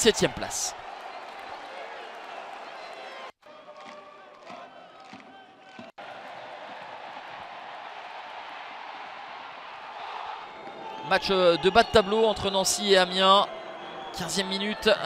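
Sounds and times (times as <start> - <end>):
stadium crowd hum: 0.0 - 15.0.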